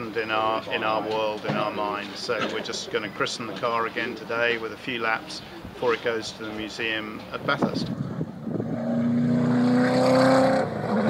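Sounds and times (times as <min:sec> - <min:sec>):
race car engine driving by: 0:08.4 - 0:11.0.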